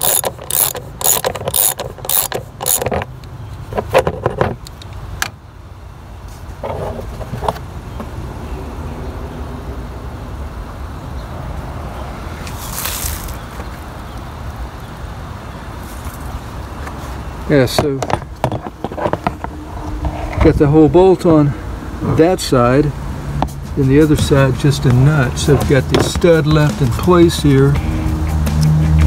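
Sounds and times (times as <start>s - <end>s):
ratchet wrench clicking: 0.0s - 3.1s.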